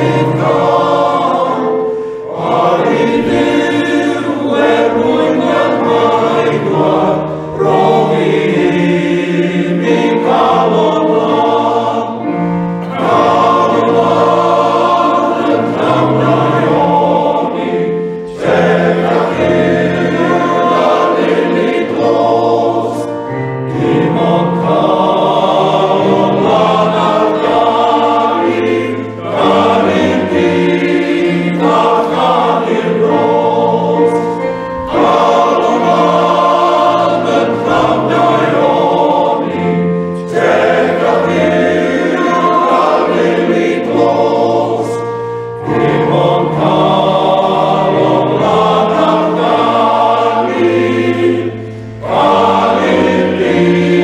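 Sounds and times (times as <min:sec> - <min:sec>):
male choir singing in harmony: 0:00.0 - 0:54.0.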